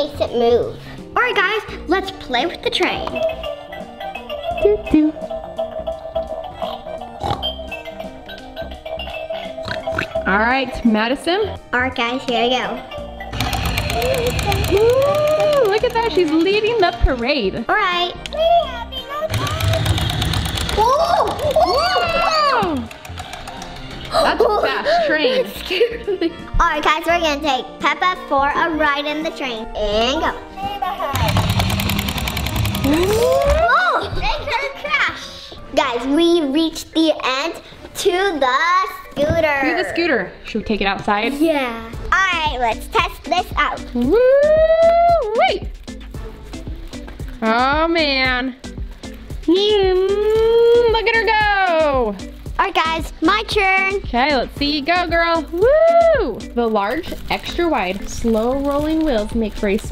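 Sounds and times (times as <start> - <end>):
pig snort: 6.6 - 7.6, 9.1 - 10.3
toy train motor clattering: 13.3 - 16.4, 19.3 - 21.8, 22.8 - 24.2, 31.1 - 33.6.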